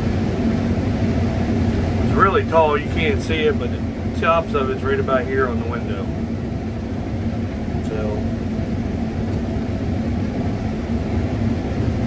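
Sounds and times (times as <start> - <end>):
combine harvester drone: 0.0 - 12.0.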